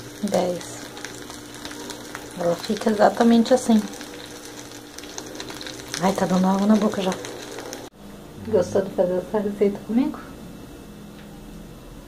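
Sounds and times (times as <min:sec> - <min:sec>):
food crackling sizzle: 0:00.0 - 0:08.0
low steady hum: 0:00.0 - 0:12.0.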